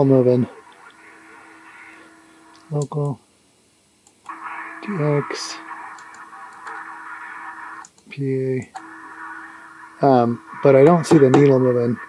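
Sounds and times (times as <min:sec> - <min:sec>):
low hum: 0:00.0 - 0:12.0
radio static hiss: 0:00.0 - 0:12.0.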